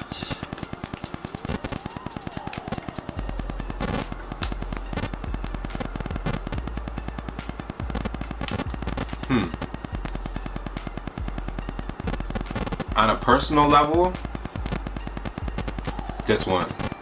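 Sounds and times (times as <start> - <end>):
microphone static clicks: 0.0 - 17.0
steady low hum: 3.1 - 16.6.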